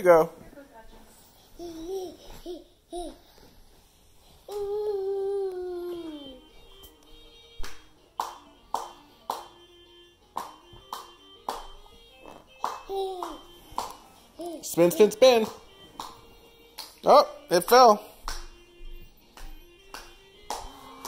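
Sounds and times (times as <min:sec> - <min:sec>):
faint stepping tune: 0:00.1 - 0:21.0
steady hand claps: 0:07.6 - 0:09.6, 0:10.3 - 0:14.1, 0:15.2 - 0:17.0, 0:17.6 - 0:21.0.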